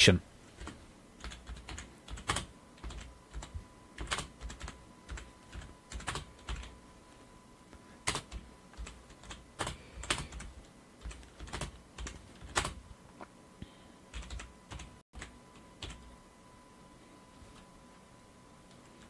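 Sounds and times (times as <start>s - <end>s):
typing on computer keyboard: 0.6s - 6.7s, 8.1s - 12.8s, 14.1s - 16.0s.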